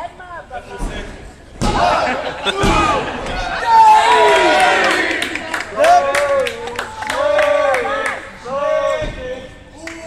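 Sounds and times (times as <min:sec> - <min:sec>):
spectators shouting: 0:01.7 - 0:09.0.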